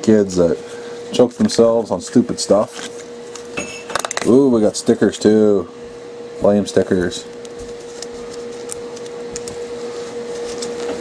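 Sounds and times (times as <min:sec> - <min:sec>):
machine hum: 0:00.0 - 0:11.0.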